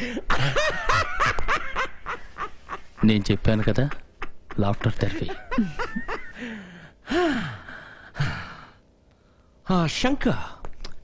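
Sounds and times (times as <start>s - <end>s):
man laughing: 0.0s - 6.7s.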